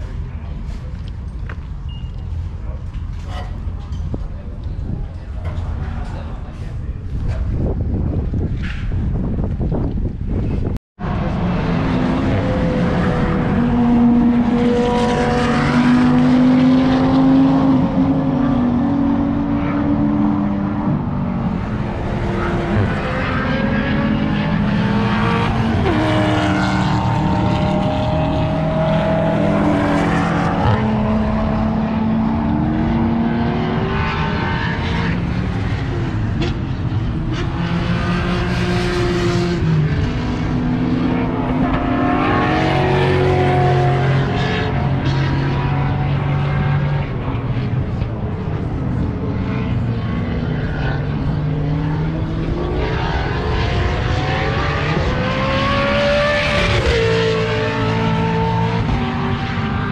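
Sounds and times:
race car engines at high revs: 0:10.0 - 0:59.9.

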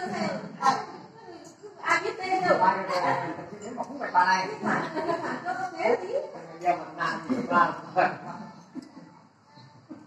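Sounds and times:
people talking: 0:00.0 - 0:08.5.

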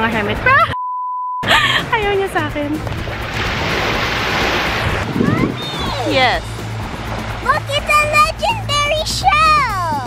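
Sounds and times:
surf washing up a shore: 0:02.8 - 0:08.4.

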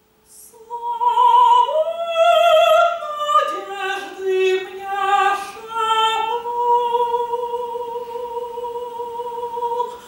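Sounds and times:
operatic soprano singing: 0:00.3 - 0:10.0.

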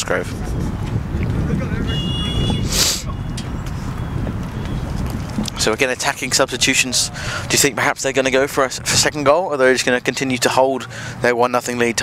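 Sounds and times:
wind buffeting microphone: 0:00.0 - 0:10.0.

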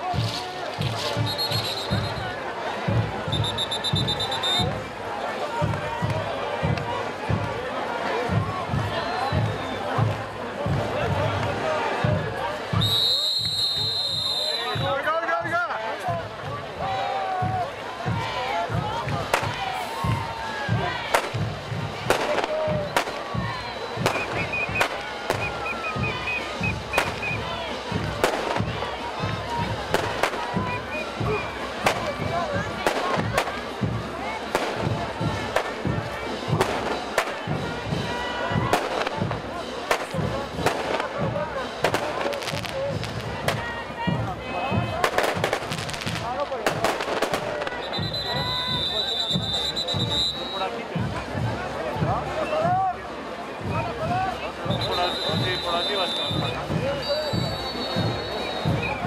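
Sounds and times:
crowd voices: 0:00.0 - 0:59.0
parade band music: 0:00.0 - 0:59.0
shrill whistle: 0:01.2 - 0:02.2, 0:03.3 - 0:04.7, 0:12.8 - 0:14.9, 0:23.8 - 0:27.4, 0:47.8 - 0:50.7, 0:54.7 - 0:59.0.

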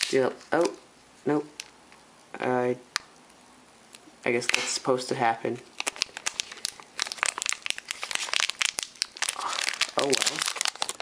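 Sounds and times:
plastic bag crinkling: 0:05.7 - 0:11.0.

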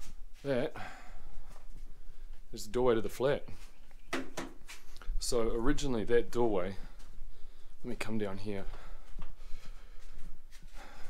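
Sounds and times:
soft footsteps: 0:00.0 - 0:11.0.

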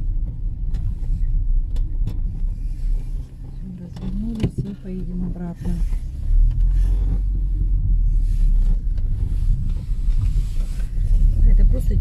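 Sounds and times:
car engine and tyres rumbling: 0:00.0 - 0:12.0.

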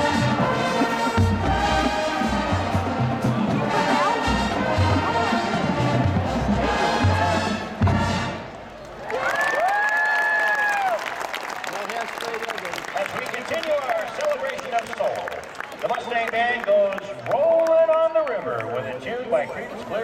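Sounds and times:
marching band playing: 0:00.0 - 0:08.8
crowd cheering and applauding: 0:08.6 - 0:19.0.

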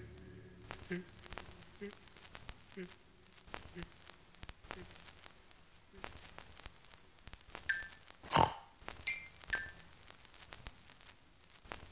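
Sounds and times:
faint crackle: 0:00.0 - 0:11.9
high-pitched blips: 0:07.7 - 0:08.4, 0:09.0 - 0:09.8
pig oink: 0:08.3 - 0:08.6.

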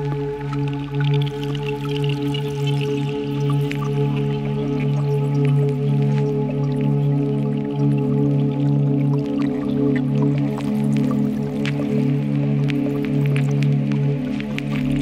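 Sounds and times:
low synth drone chord: 0:14.6 - 0:15.0.

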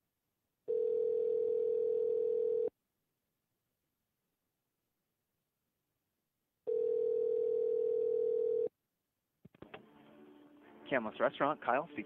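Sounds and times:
telephone ringback tone: 0:00.7 - 0:02.7, 0:06.7 - 0:08.7.

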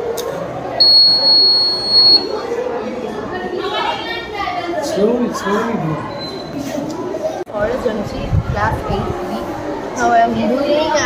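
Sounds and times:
high-pitched alarm beep: 0:00.8 - 0:02.3.

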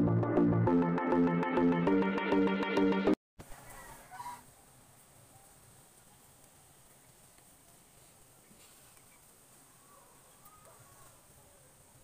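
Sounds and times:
faint animal call: 0:03.5 - 0:04.5, 0:08.5 - 0:12.0
low steady hiss: 0:04.4 - 0:10.5.

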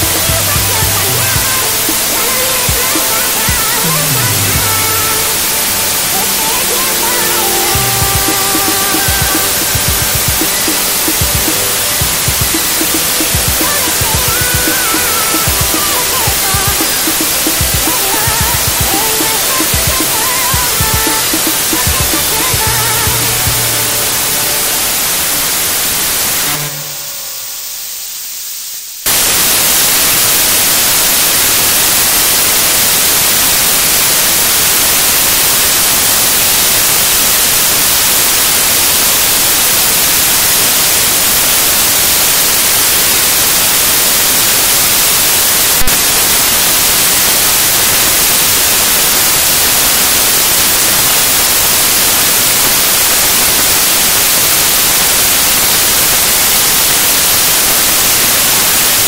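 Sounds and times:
song playing: 0:00.0 - 0:27.7
white noise hiss: 0:00.0 - 0:59.0.

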